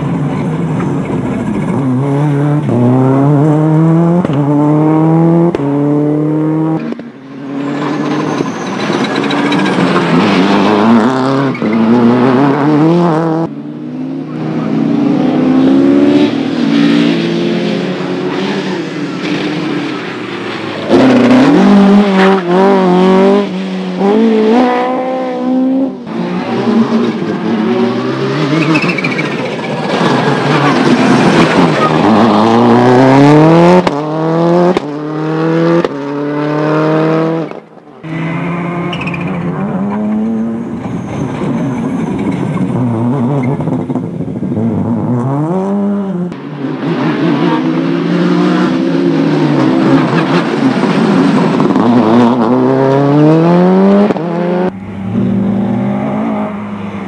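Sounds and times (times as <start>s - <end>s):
rally cars accelerating hard: 0.0s - 57.0s.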